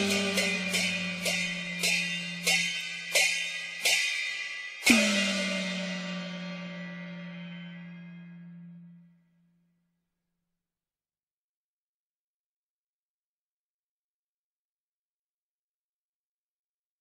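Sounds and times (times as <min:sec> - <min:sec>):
cymbal and gong strikes: 0:00.0 - 0:09.1
loud cymbal crash ringing: 0:00.0 - 0:09.1.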